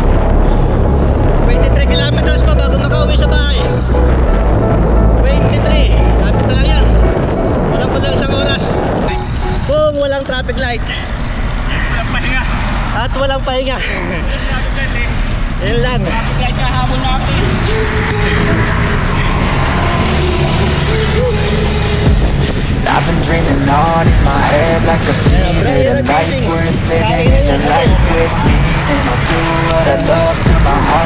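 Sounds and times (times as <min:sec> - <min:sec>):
rap music with heavy bass: 0:00.0 - 0:31.0
wind noise: 0:00.0 - 0:31.0
man talking: 0:01.4 - 0:03.8, 0:05.2 - 0:07.0, 0:11.8 - 0:17.5, 0:22.9 - 0:31.0.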